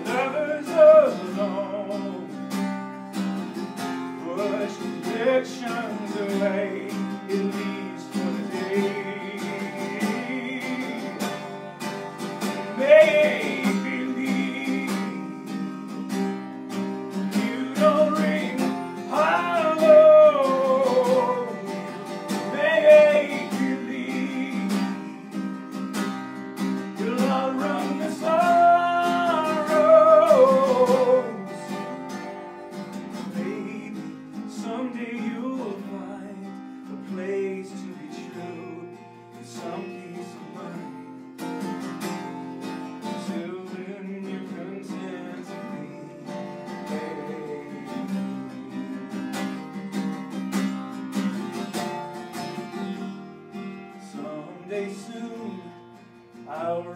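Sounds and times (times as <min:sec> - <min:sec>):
man singing: 0:00.0 - 0:02.7, 0:04.1 - 0:32.4, 0:33.0 - 0:41.4, 0:43.0 - 0:49.7, 0:53.9 - 0:56.9
acoustic guitar strumming: 0:00.0 - 0:56.9.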